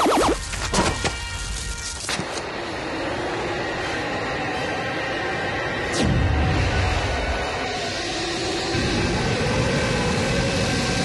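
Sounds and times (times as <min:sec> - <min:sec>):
spacecraft ambient hum: 0:00.0 - 0:11.0.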